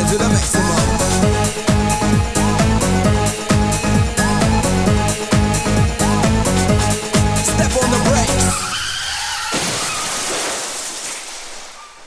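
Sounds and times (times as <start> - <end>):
dance music beat: 0.0 - 8.7
wavering tyre squeal: 8.3 - 10.2.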